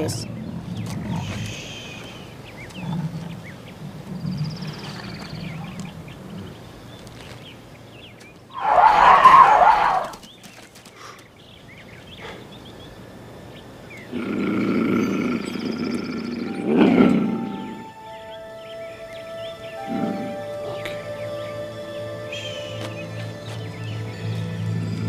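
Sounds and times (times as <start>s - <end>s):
mountain lion growling: 0.0s - 1.6s, 2.5s - 6.7s, 14.1s - 17.9s, 19.7s - 21.0s
mountain lion snarling: 2.7s - 6.6s, 14.1s - 17.9s, 19.8s - 21.0s
film score music: 15.4s - 25.0s.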